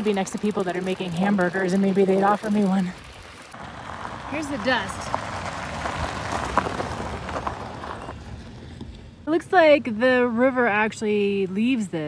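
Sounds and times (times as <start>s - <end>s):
tyres crunching over gravel: 0.0s - 9.1s.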